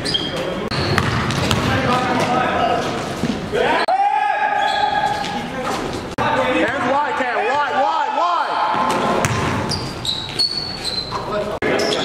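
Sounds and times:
sneaker squeaks: 0:00.0 - 0:03.8, 0:04.5 - 0:06.1, 0:08.6 - 0:12.0
players calling out: 0:00.0 - 0:12.0
basketball bouncing on hardwood: 0:00.8 - 0:02.4, 0:09.2 - 0:09.8.

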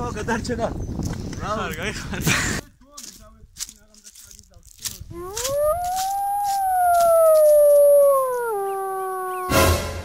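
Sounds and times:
long howl: 0:05.1 - 0:09.7.

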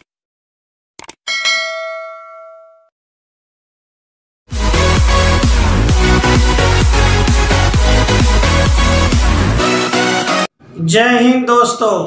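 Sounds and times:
bright notification bell ding: 0:01.3 - 0:02.9.

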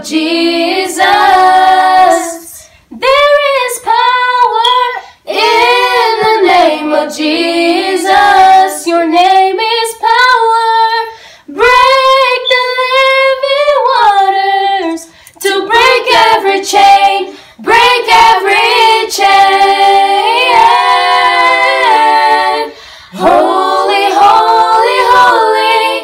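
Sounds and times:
group singing unaccompanied: 0:00.0 - 0:26.0.

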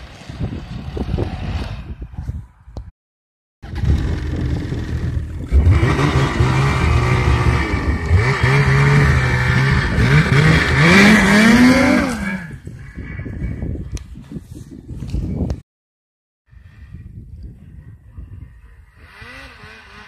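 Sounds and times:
snowmobile engine revving: 0:03.6 - 0:12.6, 0:18.9 - 0:20.0.

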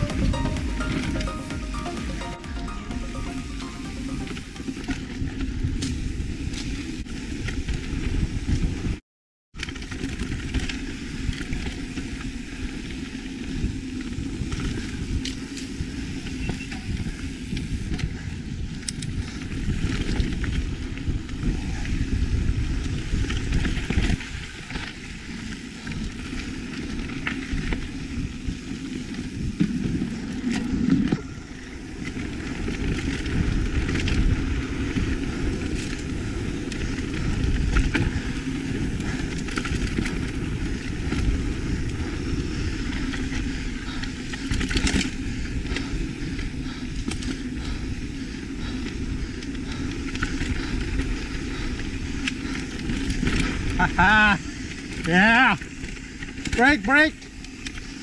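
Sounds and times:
bike chain and frame rattling: 0:32.0 - 0:58.0.

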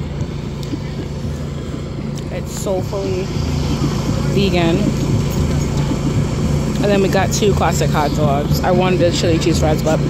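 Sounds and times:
generator humming: 0:00.0 - 0:10.0.

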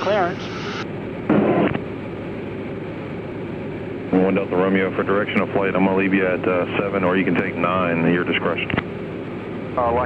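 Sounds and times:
radio transmission burst: 0:00.0 - 0:01.8
aircraft engine drone: 0:00.0 - 0:10.0.

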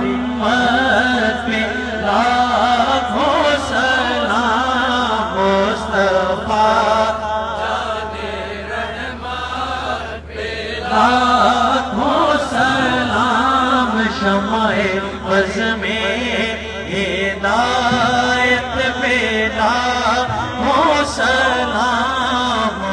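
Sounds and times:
man chanting: 0:00.0 - 0:09.8, 0:10.5 - 0:22.9.

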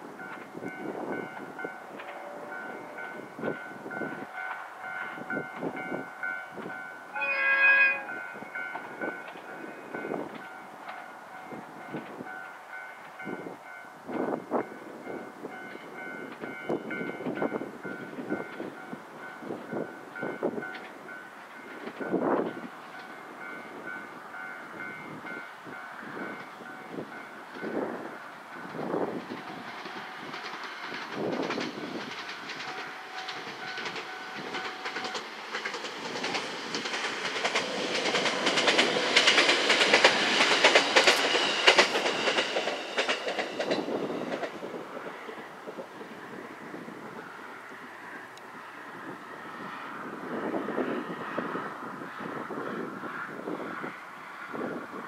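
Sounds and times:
train wheels clattering over rail joints: 0:00.0 - 0:05.9, 0:26.0 - 0:45.4
electric train running past: 0:00.0 - 0:55.0.

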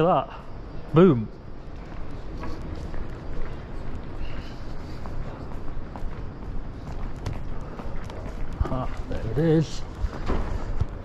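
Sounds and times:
street background noise: 0:00.0 - 0:11.0
footsteps on stone paving: 0:01.4 - 0:11.0.

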